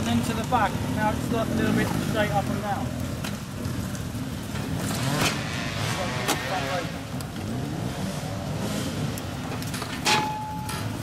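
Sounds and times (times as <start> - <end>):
people talking: 0.0 - 3.0, 5.9 - 7.0
motorcycle engines running: 0.0 - 11.0.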